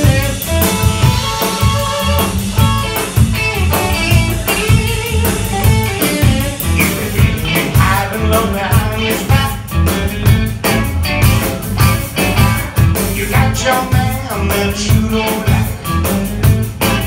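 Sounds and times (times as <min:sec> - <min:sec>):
drum kit beat: 0:00.0 - 0:17.0
electric guitars: 0:00.0 - 0:17.0.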